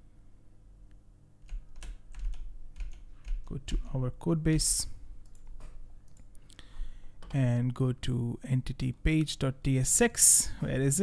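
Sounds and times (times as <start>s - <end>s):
computer keyboard keystrokes: 1.4s - 3.8s, 5.2s - 6.3s.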